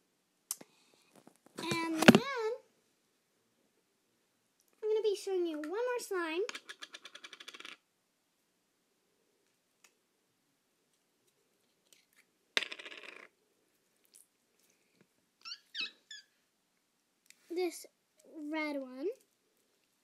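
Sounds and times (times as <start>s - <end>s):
slime squeaks gliding up and down: 15.4s - 16.4s.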